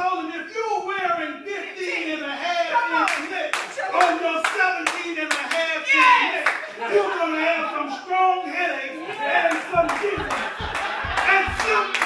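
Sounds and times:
man preaching into a microphone: 0:00.0 - 0:12.0
sharp hand claps: 0:03.1 - 0:06.6, 0:09.5 - 0:12.0.

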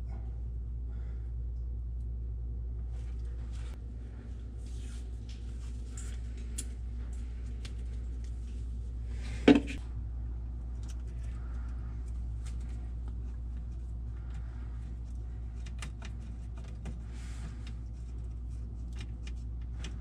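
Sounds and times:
steady low hum: 0:00.0 - 0:20.0
small clicks and rustles: 0:10.8 - 0:20.0.

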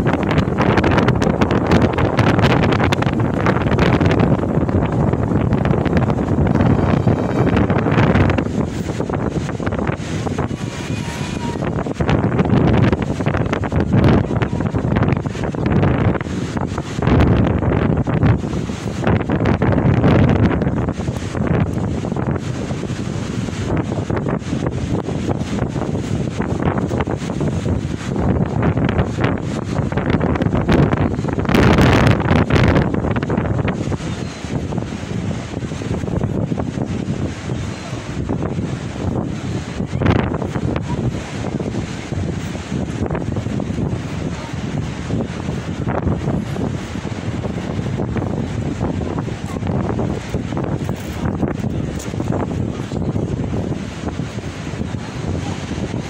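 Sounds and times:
sea waves breaking on shore: 0:00.0 - 0:56.0
wind buffeting microphone: 0:00.0 - 0:56.0.

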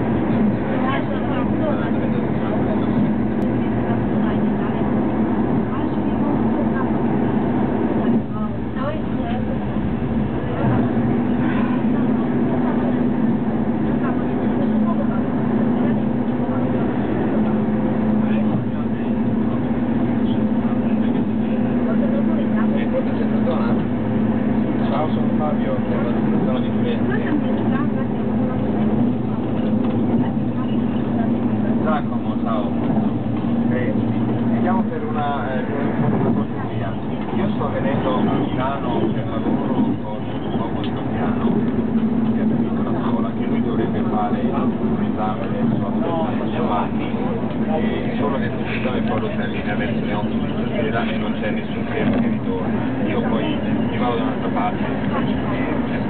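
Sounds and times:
indistinct voices talking: 0:00.0 - 0:56.0
train running noise: 0:00.0 - 0:56.0.

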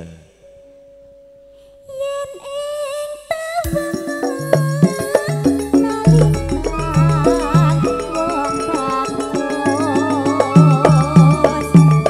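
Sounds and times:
woman singing: 0:01.6 - 0:12.0
pure held note: 0:05.4 - 0:10.6.

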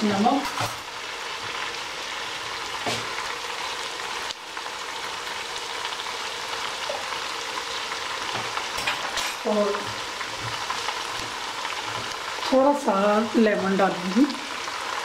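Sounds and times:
onions sizzling in hot oil: 0:00.0 - 0:15.0.

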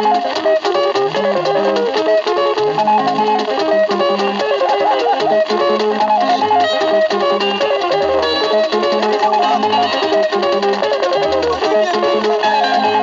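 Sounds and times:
interlocking guitar lines: 0:00.0 - 0:13.0
repeating bass line: 0:03.7 - 0:07.0.

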